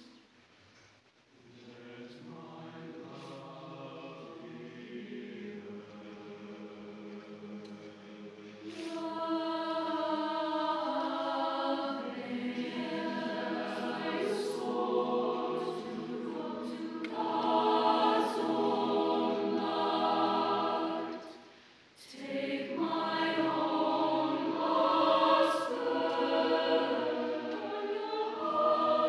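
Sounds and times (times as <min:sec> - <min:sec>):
mixed choir singing chords: 0:01.5 - 0:29.0.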